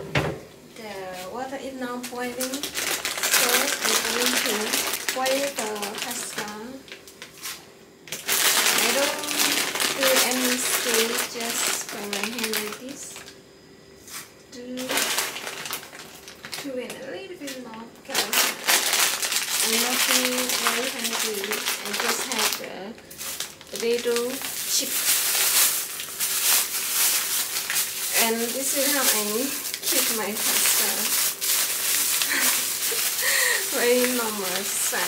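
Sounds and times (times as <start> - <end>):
plastic packaging crinkling: 0.8 - 13.4, 14.1 - 35.0.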